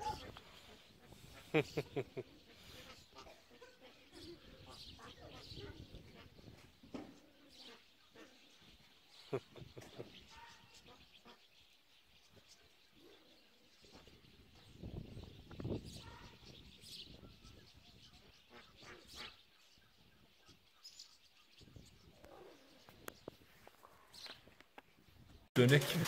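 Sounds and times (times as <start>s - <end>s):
faint bird calls and chirps: 0.0s - 25.5s.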